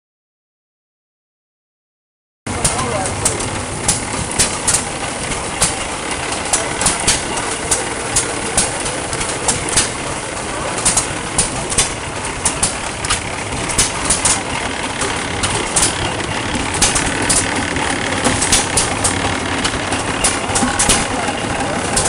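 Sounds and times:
stationary engine clattering: 2.5 - 22.0.

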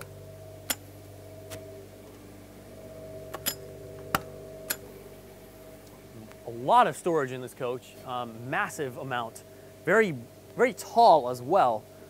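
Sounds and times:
steady low hum: 0.0 - 12.0
metallic latch clicks: 3.3 - 4.9.

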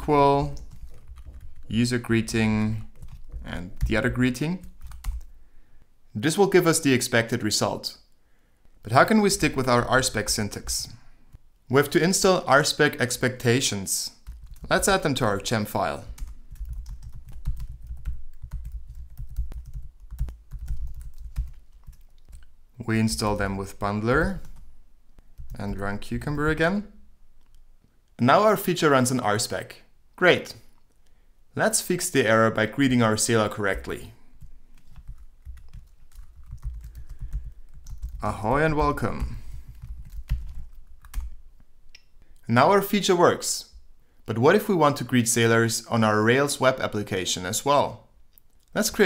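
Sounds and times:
fast typing on keyboard: 0.4 - 5.3, 14.2 - 15.0, 16.0 - 22.5, 25.4 - 26.4, 34.8 - 41.4.

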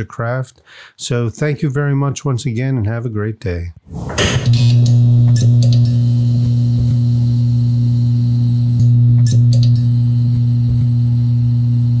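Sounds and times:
neon sign electrical buzz: 3.9 - 12.0.

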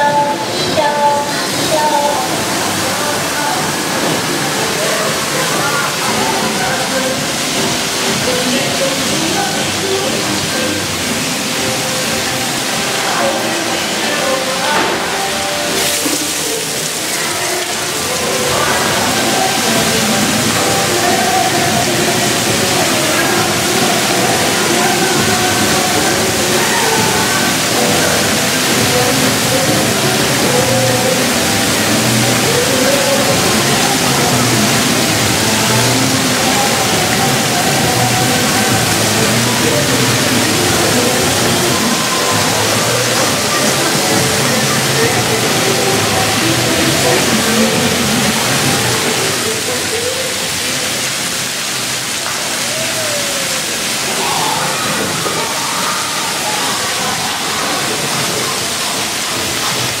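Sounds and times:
music: 0.0 - 55.0
fountain jets hissing and splashing: 0.0 - 60.0
voices: 0.0 - 60.0.

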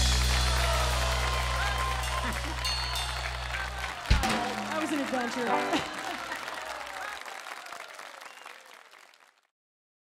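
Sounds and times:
audience applauding: 0.0 - 9.5.

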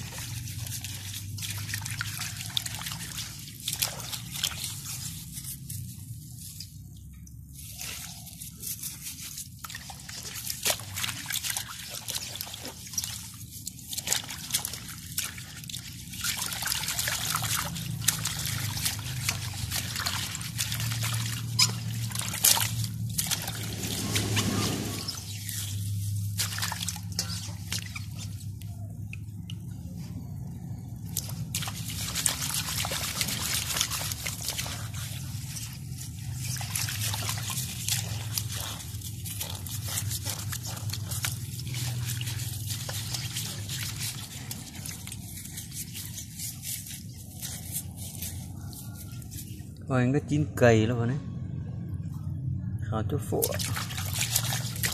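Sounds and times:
water splashing in steel basin: 0.0 - 49.6, 53.3 - 54.9
hands scrubbing with grass: 0.0 - 49.8, 53.4 - 54.9.

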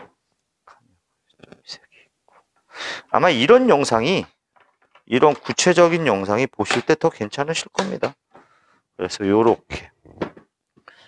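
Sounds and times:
plastic parts clicking and tapping: 4.5 - 8.5.

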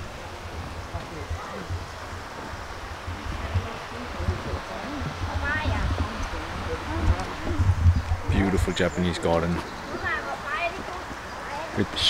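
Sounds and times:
low rumble on microphone: 0.0 - 9.6
indistinct chatter: 0.0 - 12.0.

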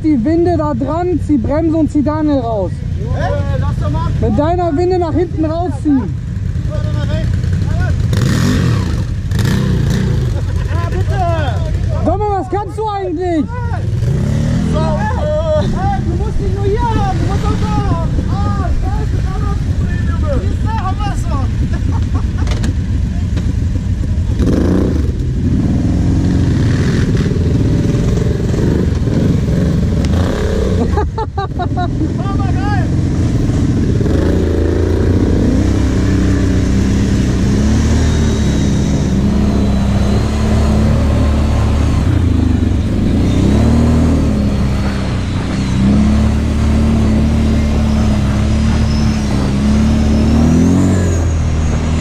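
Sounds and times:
quad bike engines idling: 0.0 - 50.6.

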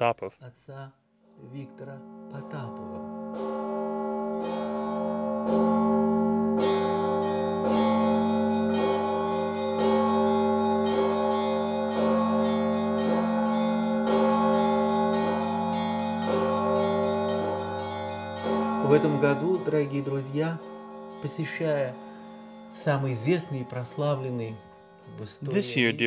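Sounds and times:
church bells ringing: 1.3 - 25.9.

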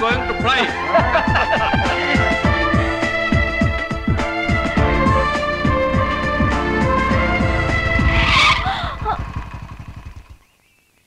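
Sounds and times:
motorcycle engine running low: 1.3 - 10.9.

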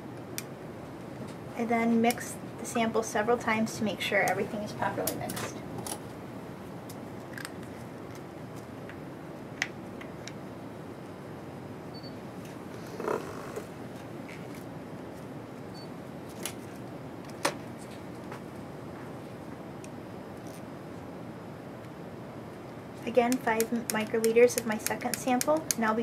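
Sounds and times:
room hiss: 0.0 - 26.0.

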